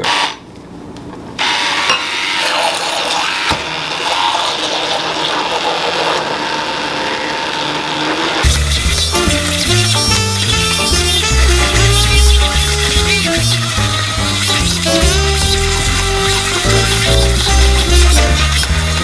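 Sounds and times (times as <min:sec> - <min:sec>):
immersion blender running: 0:00.0 - 0:00.4, 0:01.4 - 0:19.0
music with heavy beat: 0:08.4 - 0:19.0.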